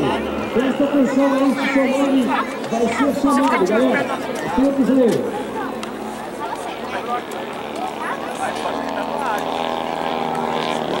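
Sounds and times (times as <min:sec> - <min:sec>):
engine drone: 0:00.0 - 0:11.0
people talking: 0:00.0 - 0:11.0.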